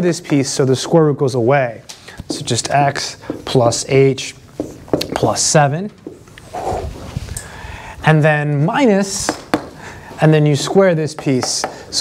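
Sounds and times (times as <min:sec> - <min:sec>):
marker drawing on whiteboard: 0:02.3 - 0:07.0, 0:09.1 - 0:12.0.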